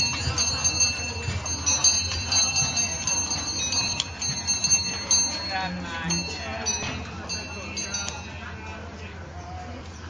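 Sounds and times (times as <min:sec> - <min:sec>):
bells ringing: 0:00.0 - 0:08.9
low background hubbub: 0:00.0 - 0:10.0.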